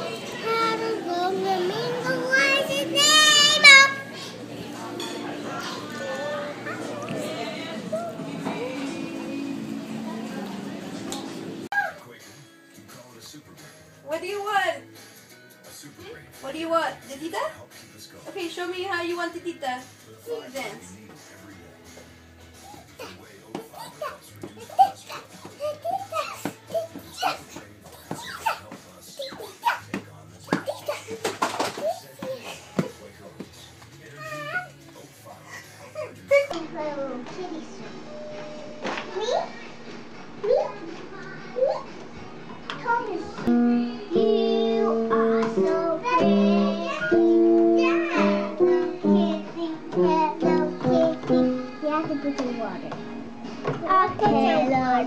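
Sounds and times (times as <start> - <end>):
child singing: 0.0 - 4.1, 42.8 - 53.0, 53.7 - 55.0
young children babbling and giggling: 0.0 - 4.5, 5.6 - 8.9, 22.6 - 29.9, 30.5 - 31.2, 34.1 - 34.8, 35.4 - 37.7, 39.1 - 39.6, 40.4 - 42.0, 44.2 - 52.9
television music: 0.0 - 55.0
piano notes: 43.5 - 55.0.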